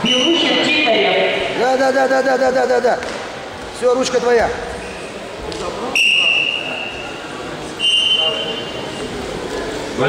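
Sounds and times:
faint echoing voices: 0:00.0 - 0:10.0
referee's whistle blasts: 0:05.9 - 0:07.2, 0:07.8 - 0:08.8.

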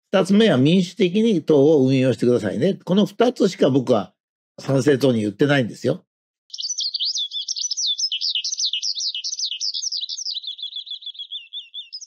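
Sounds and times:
songbird twittering: 0:06.5 - 0:12.0.

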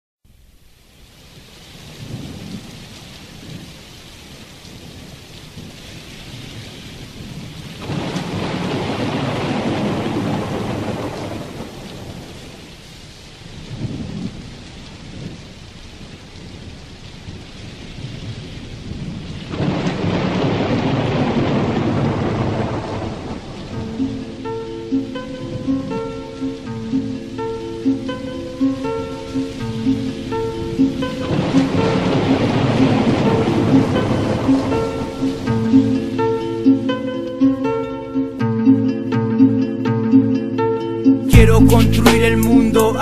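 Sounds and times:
steady rain: 0:00.2 - 0:43.0
rolls of thunder: 0:07.2 - 0:12.4, 0:18.0 - 0:23.7, 0:30.8 - 0:35.4.

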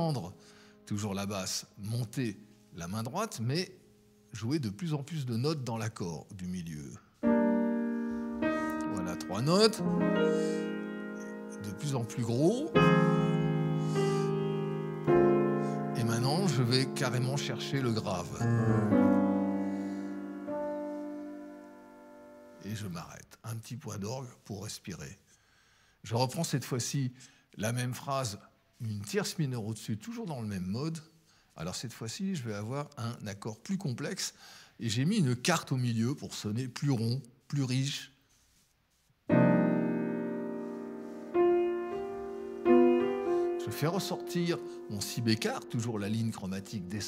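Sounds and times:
piano jazz chord: 0:07.2 - 0:22.6, 0:39.3 - 0:47.0.

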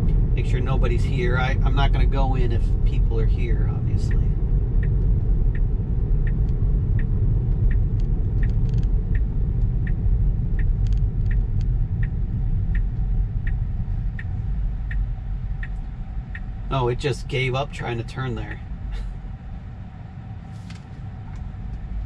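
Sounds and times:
turn signal ticking: 0:00.0 - 0:20.4, 0:21.0 - 0:22.0.

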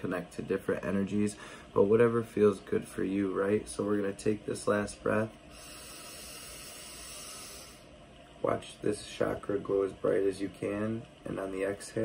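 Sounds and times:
deep breath drawn in: 0:05.5 - 0:07.9.

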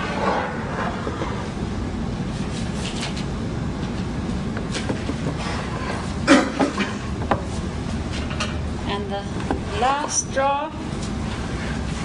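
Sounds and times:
steady low rumble: 0:00.0 - 0:06.3.

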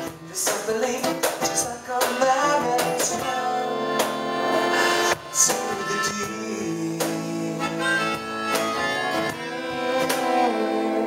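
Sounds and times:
acoustic guitar strumming: 0:00.0 - 0:11.0
melodica playing held notes: 0:03.2 - 0:11.0.

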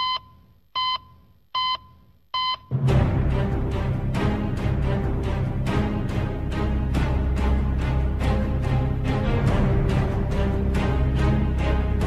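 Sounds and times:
short electronic beeps: 0:00.0 - 0:02.7.

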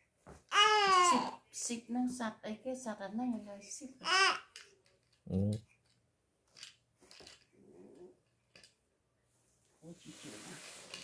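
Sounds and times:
baby cooing: 0:00.5 - 0:01.4, 0:04.0 - 0:04.5.

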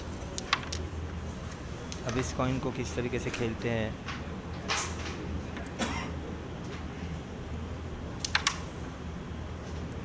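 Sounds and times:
carrom pieces clicking: 0:00.3 - 0:00.9, 0:08.2 - 0:08.6.

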